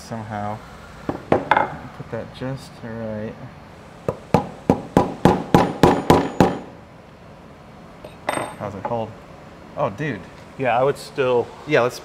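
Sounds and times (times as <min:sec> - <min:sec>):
hammer tapping metal punch: 0:04.1 - 0:06.7.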